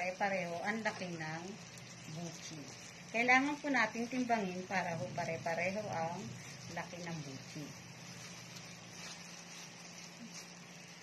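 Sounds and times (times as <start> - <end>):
steady hiss: 0.0 - 11.0
low hum: 0.6 - 10.9.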